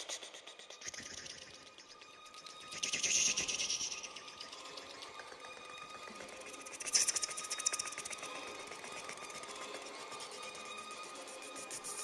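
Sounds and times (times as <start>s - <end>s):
rapid machine-like clicking: 0.0s - 10.8s.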